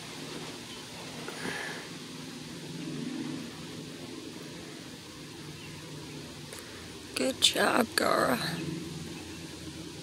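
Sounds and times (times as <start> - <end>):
faint low drone: 1.2 - 10.0.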